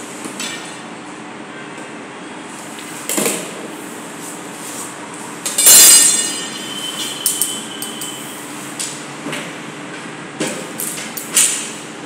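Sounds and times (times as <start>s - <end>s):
tape measure metallic ring: 5.4s - 8.4s.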